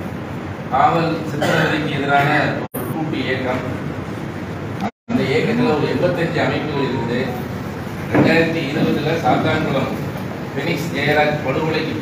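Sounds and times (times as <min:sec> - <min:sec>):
man talking into microphones: 0:08.1 - 0:12.0.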